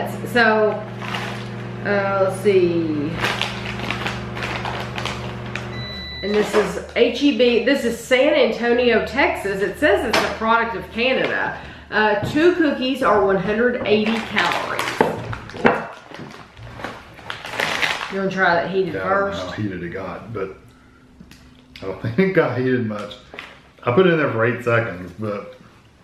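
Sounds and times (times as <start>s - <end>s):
microwave oven humming: 0.0s - 24.2s
plastic package crinkling: 0.9s - 1.6s, 3.1s - 7.0s, 14.0s - 18.3s
microwave high beep: 5.0s - 6.9s.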